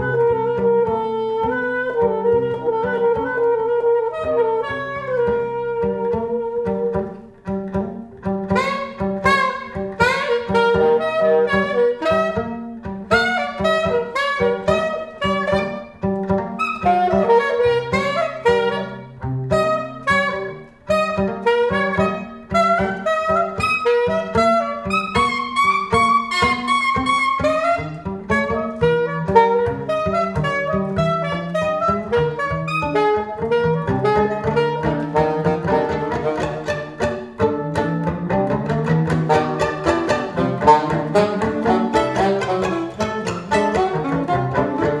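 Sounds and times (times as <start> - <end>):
saxophone: 0.0 - 45.0
violin: 0.0 - 45.0.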